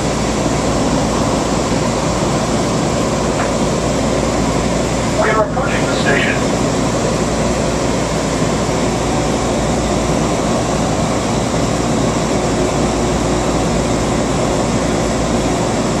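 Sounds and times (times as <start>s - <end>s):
train car running hum and rumble: 0.0s - 16.0s.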